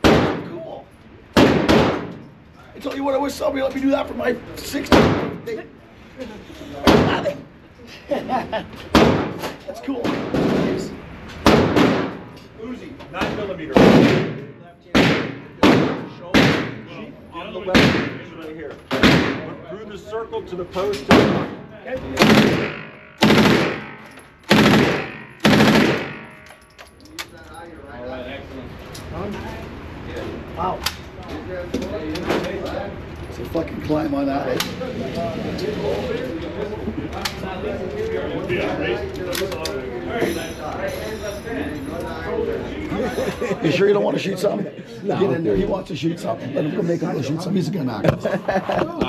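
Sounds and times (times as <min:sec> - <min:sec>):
gunshots with reverberant tail: 0:11.4 - 0:12.3, 0:13.8 - 0:16.9, 0:22.2 - 0:26.5.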